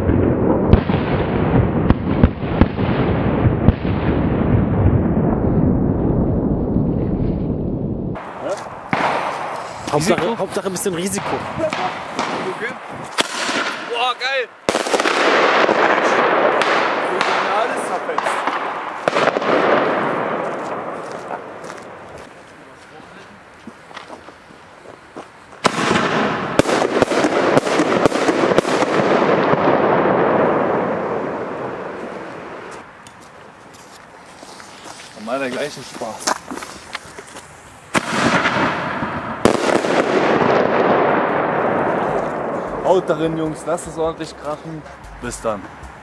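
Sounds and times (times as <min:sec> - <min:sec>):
firecracker bangs: 0:00.0 - 0:06.0, 0:08.1 - 0:22.3, 0:25.6 - 0:32.8, 0:37.9 - 0:45.7
long rumbling echo: 0:00.0 - 0:22.2, 0:25.8 - 0:32.8, 0:38.0 - 0:45.8.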